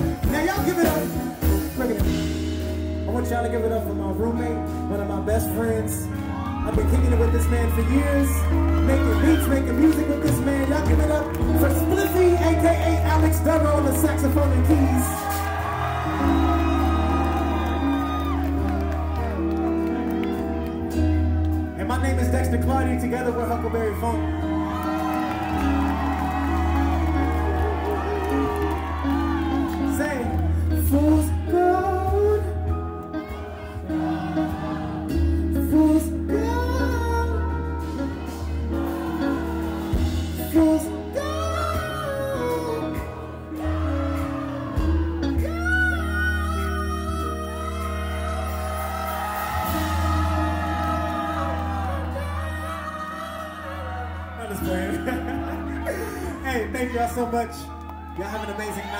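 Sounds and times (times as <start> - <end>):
drums: 0.0 - 53.4
bass line: 0.0 - 58.9
live funk band playing: 0.0 - 58.9
man singing into a microphone: 30.8 - 32.7, 35.5 - 37.8, 40.4 - 43.4, 45.3 - 49.6, 51.2 - 55.2.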